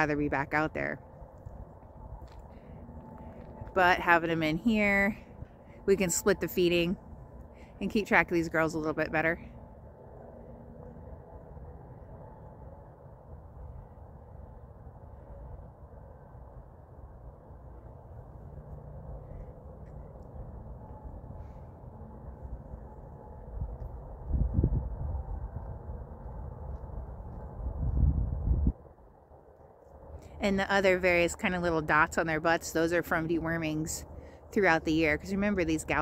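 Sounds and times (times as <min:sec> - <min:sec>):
wind buffeting microphone: 0:00.0 - 0:09.3, 0:19.0 - 0:29.4
low steady rumble: 0:00.0 - 0:36.0.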